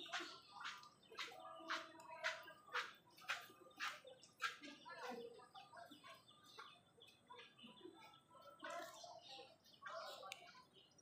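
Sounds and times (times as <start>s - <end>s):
bird calls and clucks: 0.0s - 11.0s.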